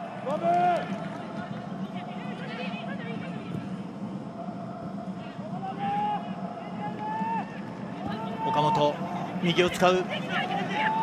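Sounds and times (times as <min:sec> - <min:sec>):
players shouting: 0:00.0 - 0:03.2, 0:04.3 - 0:11.0
stadium ambience: 0:00.0 - 0:11.0.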